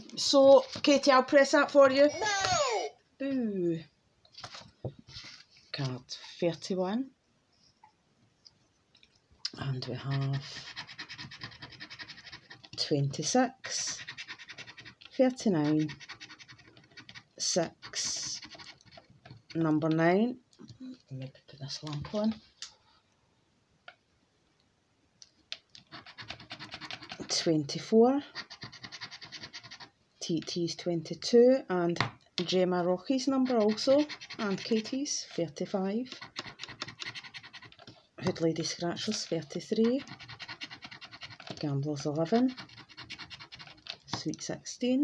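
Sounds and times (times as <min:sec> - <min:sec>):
person speaking: 0:00.0 - 0:03.8, 0:09.5 - 0:10.8, 0:15.1 - 0:16.0, 0:17.4 - 0:18.6, 0:19.5 - 0:22.6, 0:30.2 - 0:36.3, 0:38.2 - 0:40.2, 0:41.5 - 0:42.7
scratcher scraping scratchcard: 0:09.8 - 0:12.8, 0:13.6 - 0:19.8, 0:25.8 - 0:27.4, 0:33.2 - 0:35.0, 0:36.0 - 0:37.9, 0:38.6 - 0:44.0.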